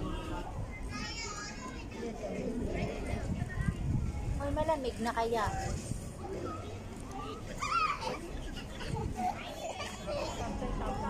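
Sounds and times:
people and children chattering: 0.0 - 11.0.

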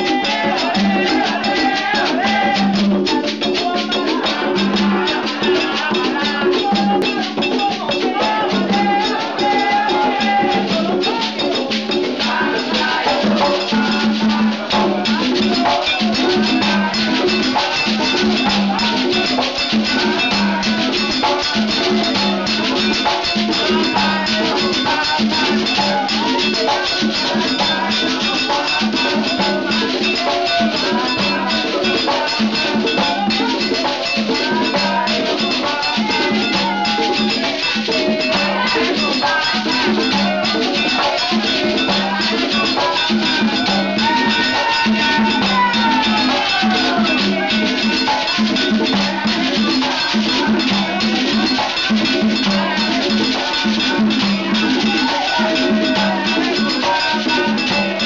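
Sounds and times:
hand drums in a driving rhythm: 0.0 - 58.0
voices singing: 0.0 - 58.0.

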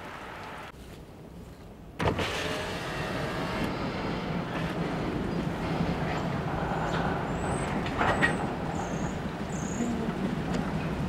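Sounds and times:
freight train wheels rumbling: 3.7 - 11.0.

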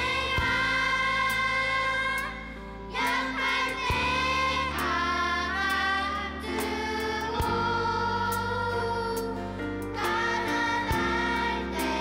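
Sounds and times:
group singing praise song: 0.0 - 9.3, 10.0 - 12.0.

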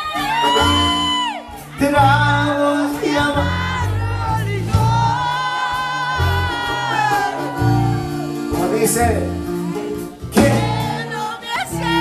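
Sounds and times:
live band playing: 0.0 - 12.0
women singing along: 2.7 - 8.3, 10.4 - 12.0.

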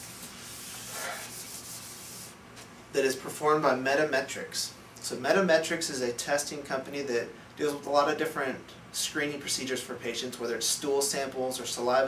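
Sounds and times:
wiping a whiteboard: 0.0 - 2.4.

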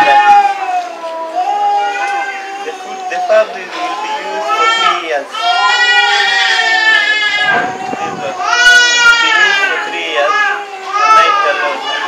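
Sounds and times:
infant crying: 0.0 - 12.0.

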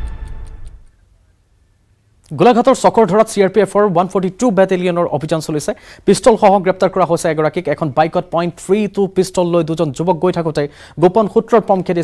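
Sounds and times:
theme music: 0.0 - 0.9.

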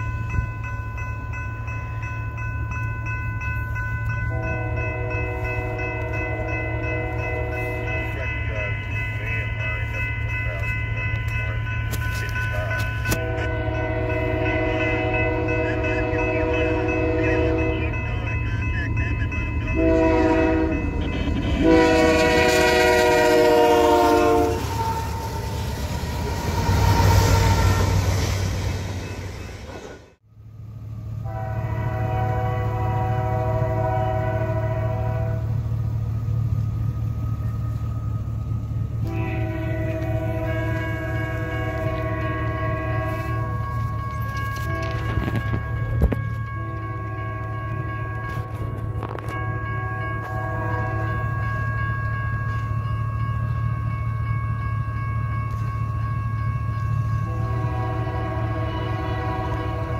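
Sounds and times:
rumble of passing train: 0.0 - 59.9
train air horn blasts: 4.2 - 8.3, 12.1 - 18.1, 19.7 - 29.1, 31.2 - 35.6, 39.0 - 51.3, 57.2 - 59.9.

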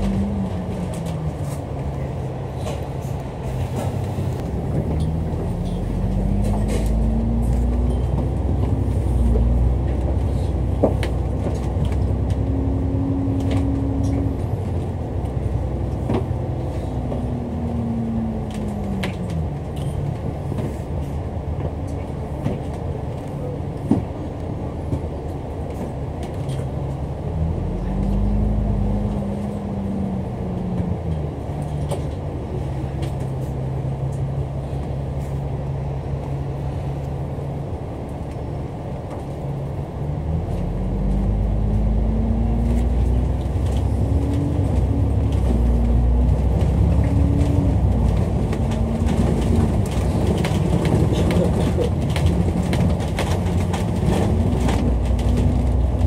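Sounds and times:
bus engine from inside: 0.0 - 56.0.

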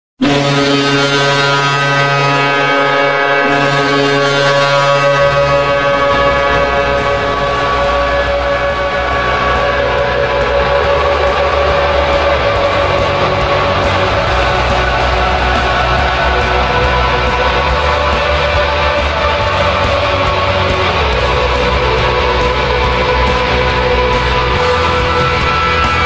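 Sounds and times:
hockey goal horn blast: 0.2 - 26.0
low music: 0.2 - 26.0.

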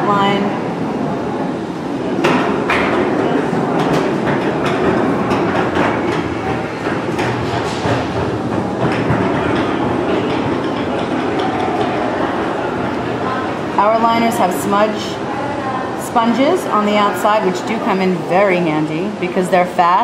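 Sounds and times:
din of busy indoor space: 0.0 - 20.0
knocks and clatter: 2.2 - 12.5.

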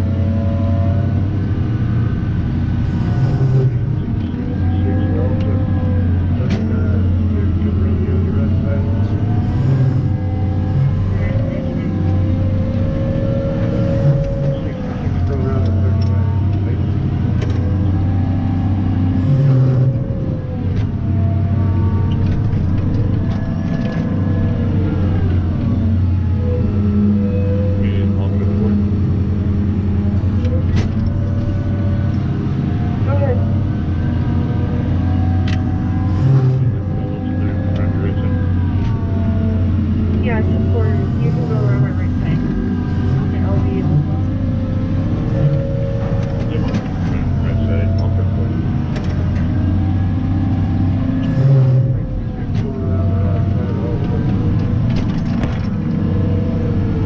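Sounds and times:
diesel engine revving under load: 0.0 - 57.0.

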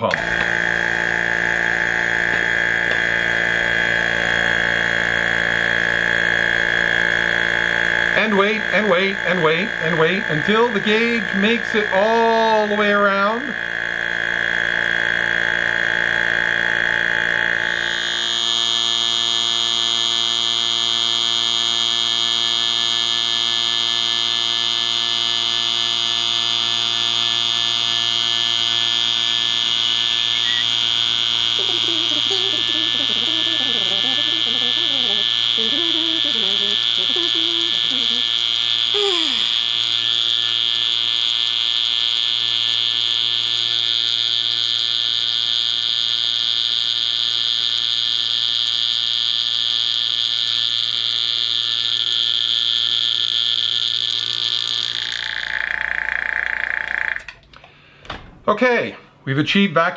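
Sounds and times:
vacuum pump high-pitched hum: 0.0 - 59.4.

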